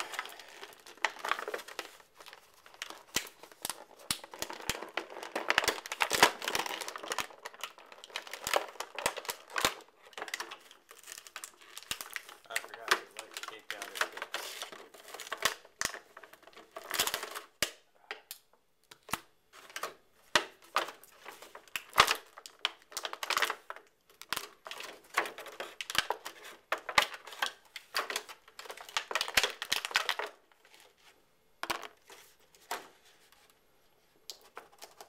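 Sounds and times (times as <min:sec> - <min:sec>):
plastic packaging crinkling: 0:00.0 - 0:17.6, 0:19.0 - 0:31.0.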